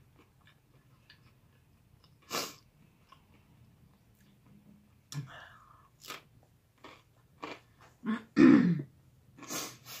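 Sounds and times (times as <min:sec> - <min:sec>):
woman clearing her throat: 0:08.0 - 0:08.9.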